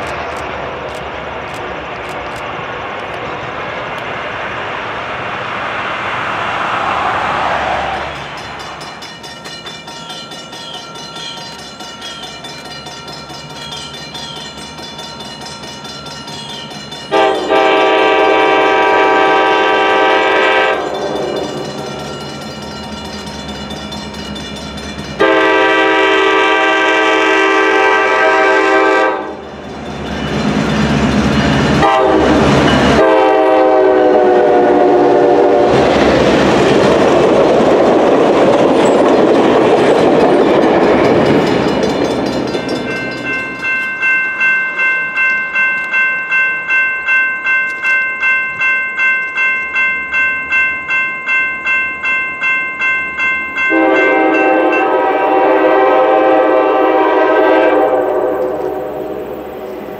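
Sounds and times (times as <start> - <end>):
train passing rumble: 0.0 - 59.9
crossing bell ringing: 8.0 - 34.5, 38.6 - 59.9
locomotive air horn: 17.1 - 21.6, 25.2 - 29.4, 31.8 - 35.9, 53.7 - 59.4.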